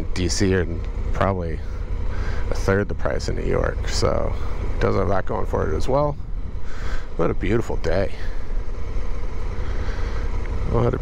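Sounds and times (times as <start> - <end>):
motorcycle engine and road noise: 0.0 - 11.0.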